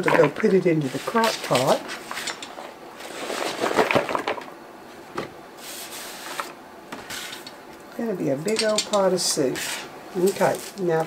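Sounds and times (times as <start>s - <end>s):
knife scraping cutting board: 9.5s - 9.9s.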